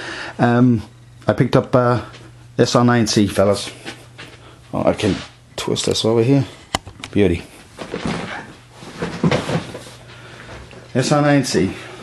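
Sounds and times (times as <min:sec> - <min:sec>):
knocking and rustling: 0:07.8 - 0:09.9.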